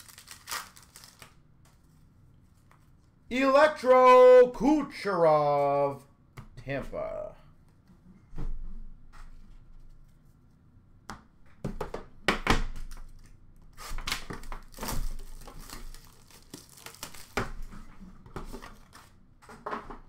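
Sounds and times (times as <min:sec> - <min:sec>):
plastic wrap crinkling and tearing: 0:00.0 - 0:01.4, 0:13.1 - 0:17.7.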